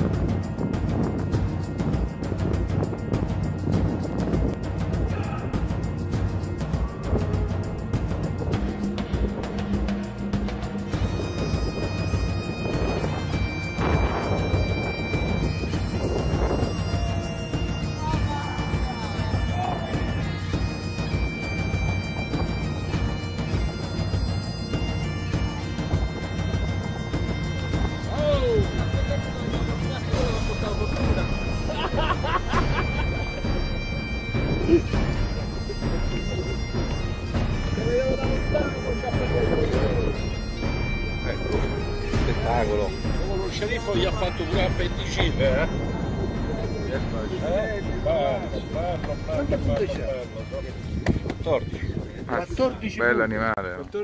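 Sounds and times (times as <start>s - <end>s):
bagpipe music: 0.0s - 54.0s.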